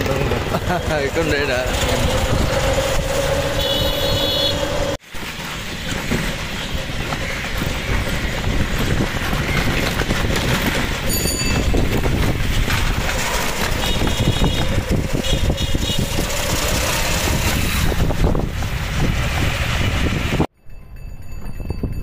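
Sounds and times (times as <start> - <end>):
vehicle rumble and rushing: 0.0 - 20.5
street sound: 0.0 - 22.0.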